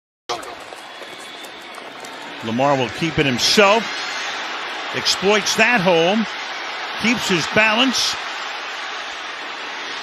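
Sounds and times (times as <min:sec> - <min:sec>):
stadium crowd noise: 0:00.3 - 0:10.0.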